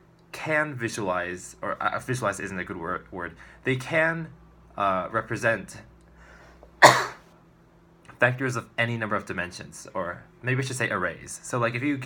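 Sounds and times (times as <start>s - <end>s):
faint intake of breath: 3.4s - 3.6s, 6.1s - 6.8s
man sneezing: 6.8s - 7.2s.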